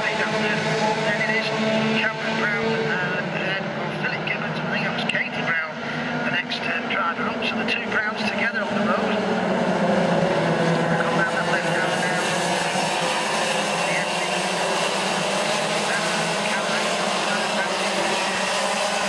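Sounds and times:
kart engines droning whine: 0.0s - 19.0s.

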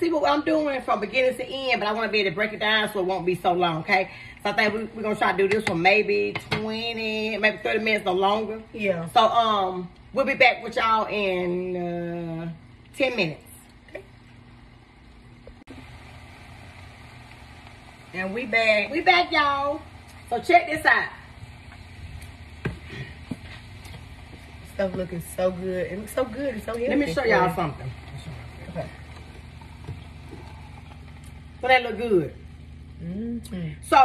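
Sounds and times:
steady low hum with faint hiss: 0.0s - 34.0s.

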